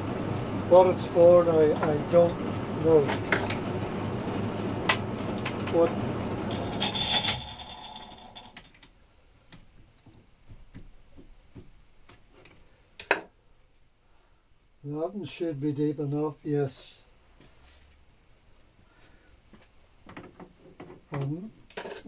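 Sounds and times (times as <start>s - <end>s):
metal lathe running: 0.3s - 8.6s.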